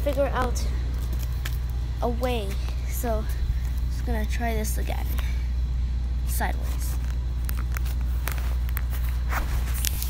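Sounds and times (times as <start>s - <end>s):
phone handling rumble: 0.0s - 5.3s, 6.0s - 10.0s.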